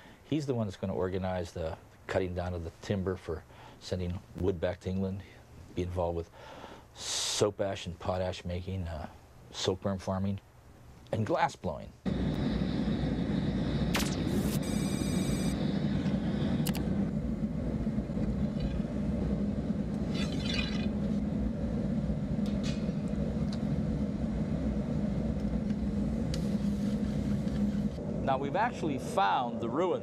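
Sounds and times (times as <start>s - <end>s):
furnace roaring: 12.0s - 30.0s
sharp click: 13.9s - 14.6s, 16.6s - 16.9s.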